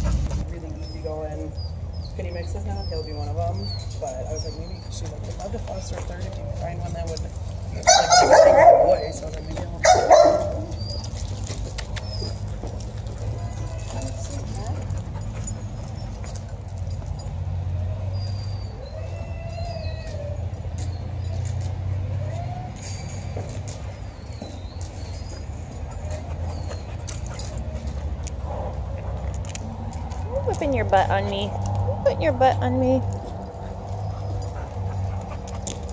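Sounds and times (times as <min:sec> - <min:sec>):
dog whining: 0:18.0 - 0:20.7.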